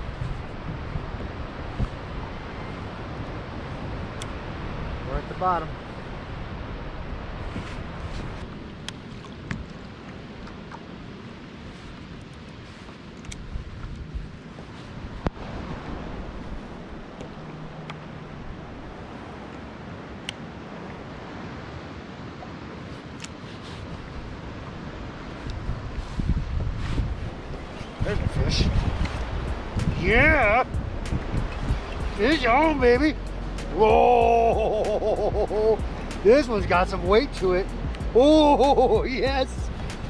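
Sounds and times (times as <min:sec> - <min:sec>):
water lapping around kayak: 0:00.0 - 0:37.2
wind buffeting microphone: 0:00.0 - 0:40.0.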